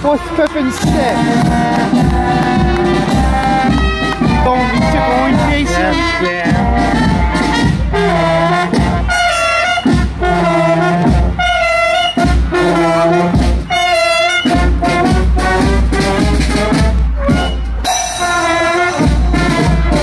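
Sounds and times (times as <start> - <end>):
brass band playing a march: 0.0 - 20.0
drum beat: 0.5 - 20.0.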